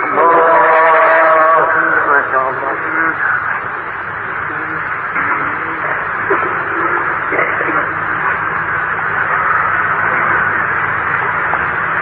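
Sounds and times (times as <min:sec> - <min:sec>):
faint indistinct voices: 0:00.0 - 0:11.8
static hiss: 0:00.0 - 0:12.0.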